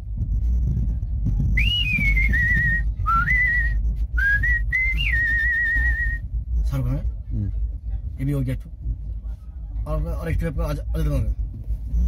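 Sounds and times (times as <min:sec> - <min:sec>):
man whistling a tune: 0:01.6 - 0:06.2.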